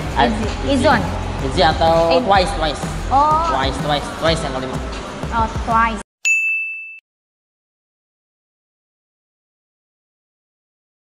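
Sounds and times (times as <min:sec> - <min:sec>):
bright ding: 0:06.3 - 0:07.0.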